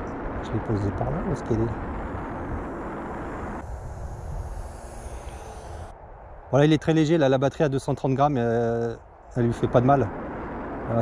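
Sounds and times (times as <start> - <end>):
wind rush: 0.0 - 11.0
model plane electric motor whine: 1.7 - 6.0.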